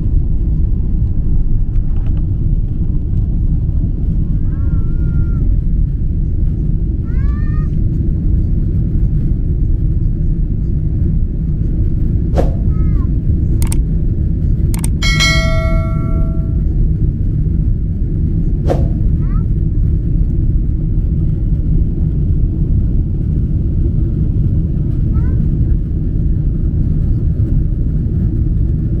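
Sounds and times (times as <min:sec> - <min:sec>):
jet airliner cabin rumble: 0:00.0 - 0:16.6
bell-like ding: 0:15.0 - 0:16.6.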